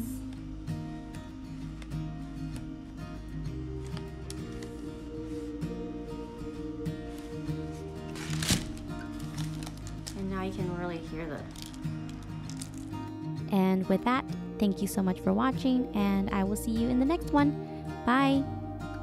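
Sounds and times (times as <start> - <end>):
background music with sustained notes: 0.0 - 19.0.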